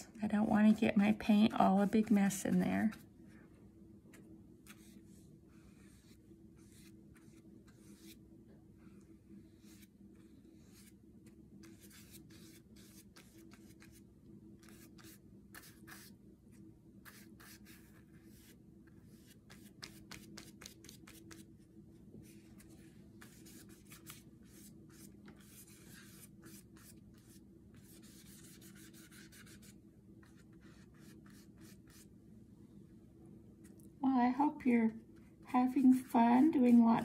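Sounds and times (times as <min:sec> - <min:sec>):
low steady hum: 0:00.0 - 0:37.0
brush strokes on paper: 0:04.1 - 0:08.2, 0:08.8 - 0:11.0, 0:11.6 - 0:14.0, 0:14.6 - 0:16.1, 0:17.0 - 0:21.6, 0:22.2 - 0:32.1, 0:35.2 - 0:37.0.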